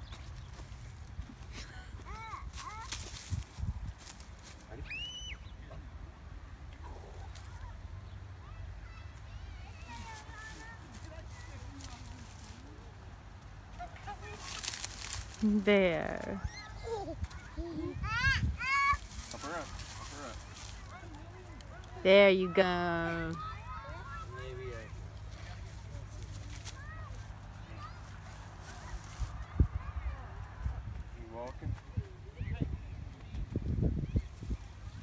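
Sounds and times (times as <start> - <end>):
wind rumble on microphone: 3.2 - 4.1, 29.2 - 35.0
short rustle: 13.7 - 17.6, 18.6 - 22.0.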